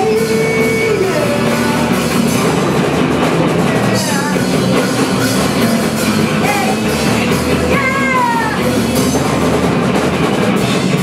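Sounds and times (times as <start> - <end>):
drum kit: 0.0 - 11.0
electric bass: 0.0 - 11.0
live rock band playing: 0.0 - 11.0.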